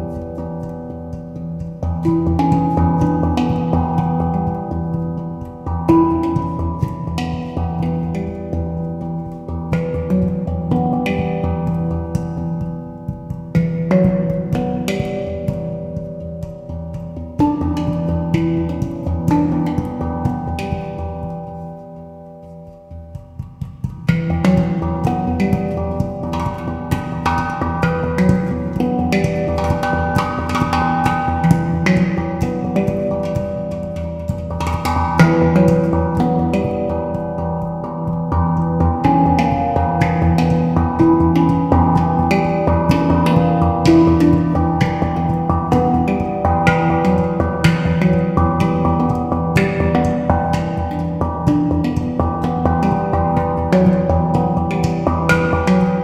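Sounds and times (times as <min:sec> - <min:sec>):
handpan notes struck by hand: 0:00.0 - 0:56.0.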